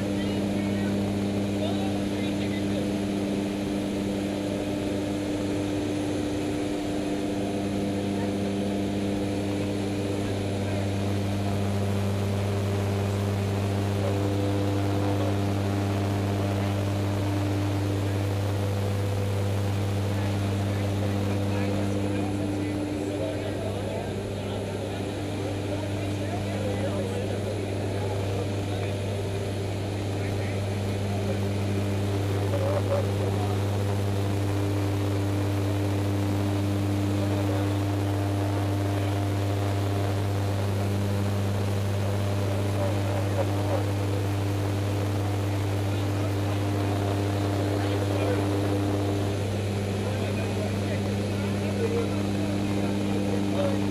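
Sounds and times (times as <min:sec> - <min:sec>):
propeller aircraft engine droning: 0:00.0 - 0:53.9.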